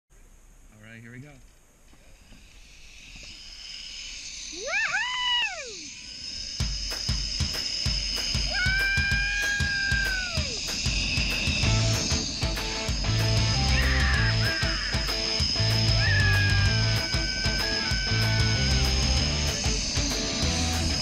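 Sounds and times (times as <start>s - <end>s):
trolley on zipline cable: 1.4s - 21.0s
rider whooping: 4.5s - 6.0s, 8.4s - 21.0s
wind rushing: 5.2s - 21.0s
rock music with drum beat: 6.6s - 21.0s.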